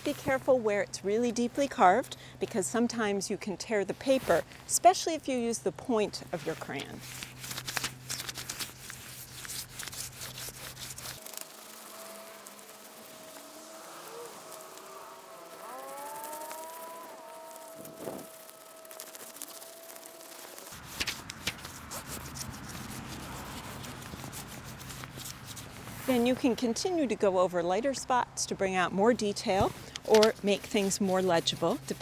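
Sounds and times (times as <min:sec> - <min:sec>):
faint steady tone with pitch glides: 0:11.3 - 0:20.7
crayon scratching on paper: 0:30.1 - 0:32.0.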